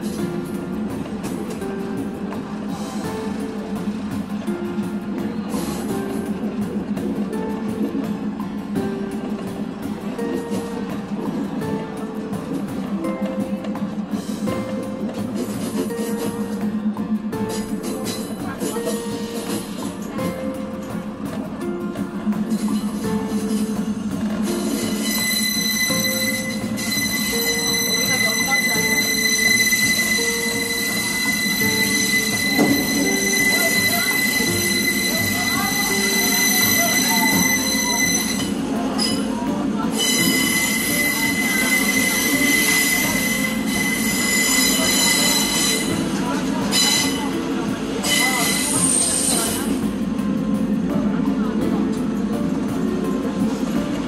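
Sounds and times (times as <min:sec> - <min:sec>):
train running drone: 0:00.0 - 0:54.0
train wheels squealing on rails: 0:02.6 - 0:07.8, 0:10.1 - 0:21.0, 0:22.3 - 0:50.0.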